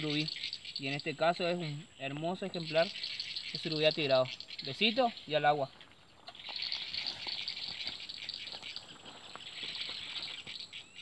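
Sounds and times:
insect chorus buzzing: 0.0 - 11.0
rustles and clicks in grass: 0.0 - 11.0.

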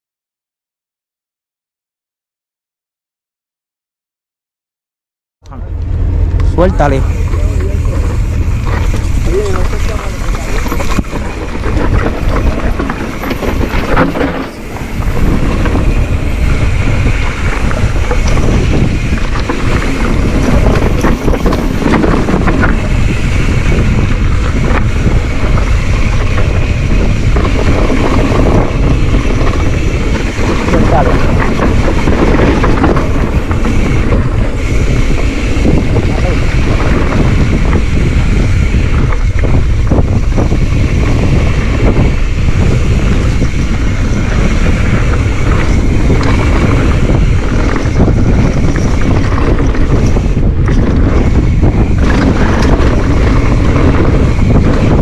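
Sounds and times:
wind buffeting microphone: 5.6 - 55.0
bike clattering over rough ground: 7.1 - 55.0.

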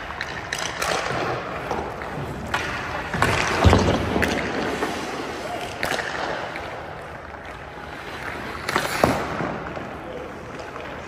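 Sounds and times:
ice skate blades scraping: 0.2 - 10.0.

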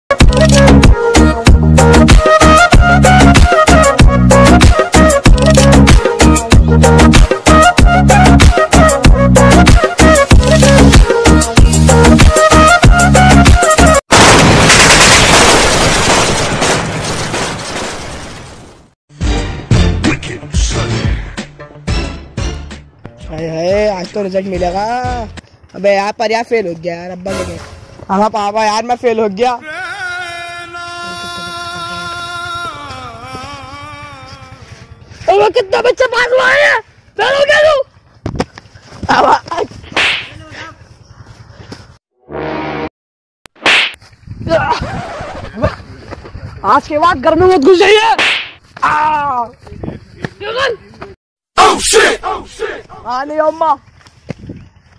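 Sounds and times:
arm swinging whip-like swish: 39.8 - 40.4, 43.6 - 44.0, 48.2 - 48.6.

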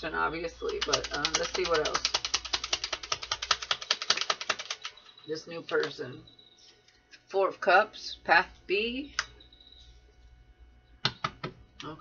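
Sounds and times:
cards being shuffled: 0.7 - 4.9.

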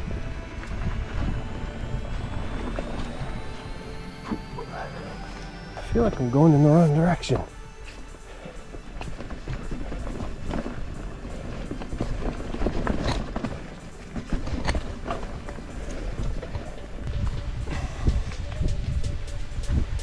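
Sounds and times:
wind on microphone: 0.0 - 6.3, 7.4 - 20.0
bike tires rolling over dirt: 8.3 - 20.0
bike rattling over bumps: 8.8 - 20.0.

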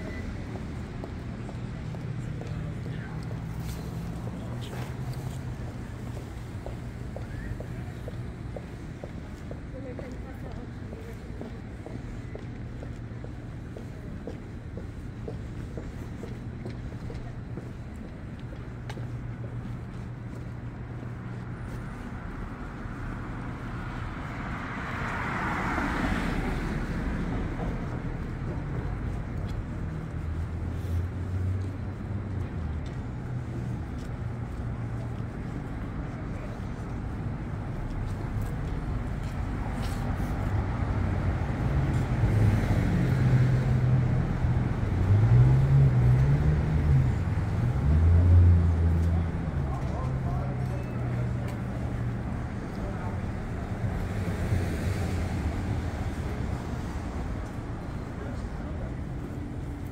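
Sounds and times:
low rumble of engines: 0.0 - 59.9
car passing: 23.8 - 28.3.

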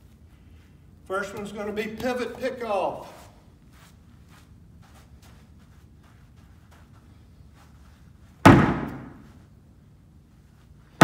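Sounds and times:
ball hitting plywood wall: 8.4 - 9.3.

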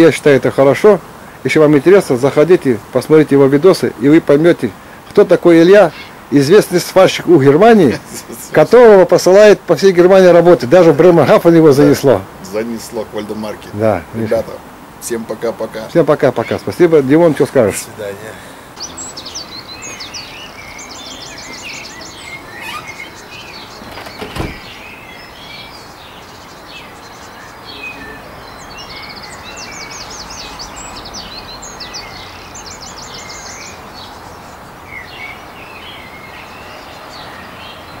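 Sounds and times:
songbirds chirping and trilling: 0.0 - 38.0
steady background hiss: 0.0 - 38.0.

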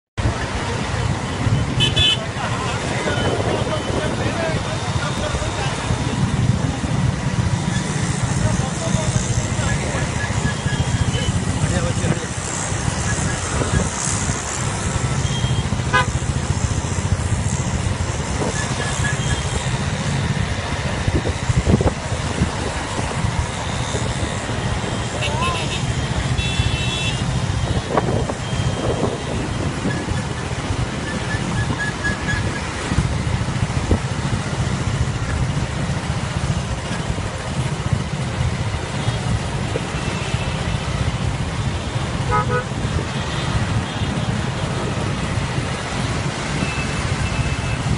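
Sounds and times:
wind on microphone: 0.2 - 26.4, 27.2 - 40.0
motorcycle engines rumbling: 0.2 - 47.9
horn toots: 1.6 - 2.3, 15.2 - 16.3, 24.9 - 29.2, 42.1 - 44.2.

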